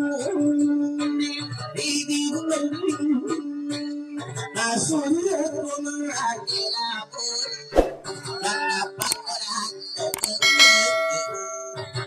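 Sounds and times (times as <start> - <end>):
mouse clicks: 10.1 - 10.4
notification bell ding: 10.4 - 12.0.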